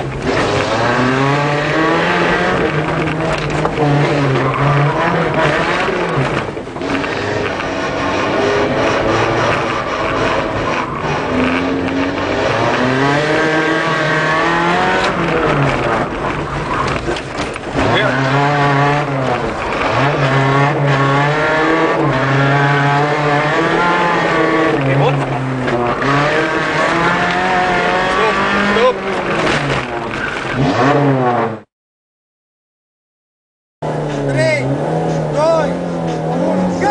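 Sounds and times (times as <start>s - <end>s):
rally car engine revving: 0.0s - 31.7s, 33.8s - 36.9s.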